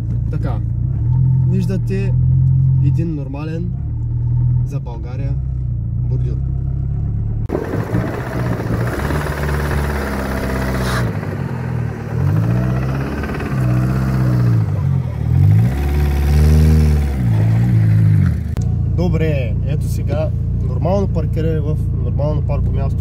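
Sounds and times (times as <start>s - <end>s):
car engine revving: 0.6s - 23.0s
steady low rumble: 4.7s - 16.1s.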